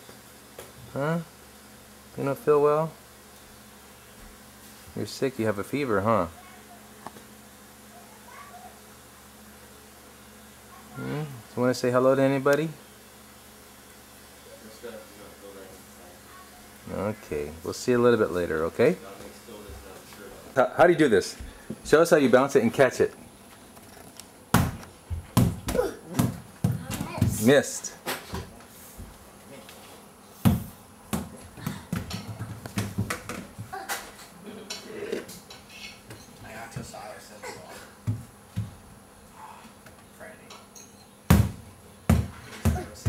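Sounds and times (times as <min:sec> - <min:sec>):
ball bouncing on wooden floor: 0:24.5 - 0:27.4, 0:30.4 - 0:33.7, 0:38.0 - 0:38.8, 0:41.3 - 0:43.0
small ball bouncing on wooden floor: 0:30.5 - 0:33.7.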